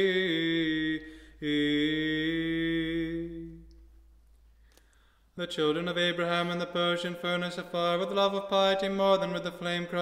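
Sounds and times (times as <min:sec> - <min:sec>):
man chanting liturgical chant: 0:00.0 - 0:03.6, 0:05.4 - 0:10.0.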